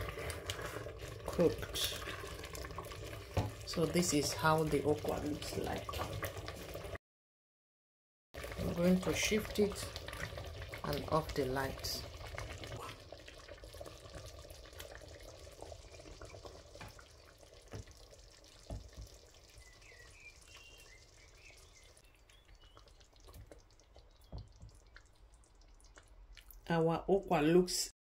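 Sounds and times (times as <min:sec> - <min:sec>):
wet sloshing and pouring: 0:00.0 - 0:07.0, 0:08.4 - 0:26.6.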